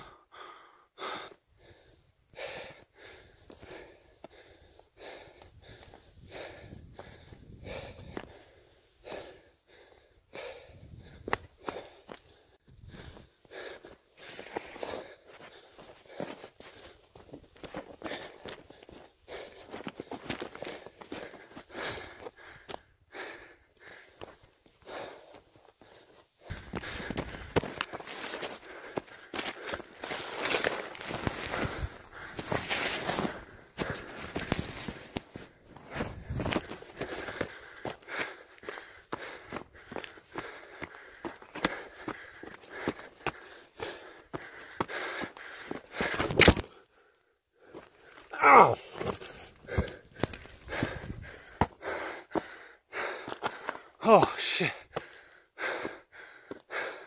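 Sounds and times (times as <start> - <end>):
person breathing heavily: 0.0 - 57.0
footsteps crunching on snow and rock: 26.5 - 44.0, 47.7 - 51.8.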